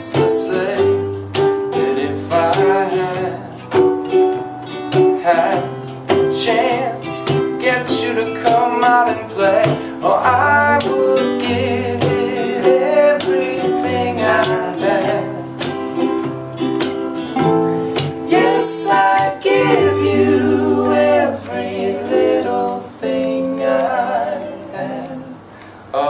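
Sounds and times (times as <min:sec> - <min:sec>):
men singing: 0:00.0 - 0:16.4, 0:17.4 - 0:25.5
ukulele strummed: 0:00.0 - 0:25.0
acoustic guitar strummed: 0:00.0 - 0:25.4.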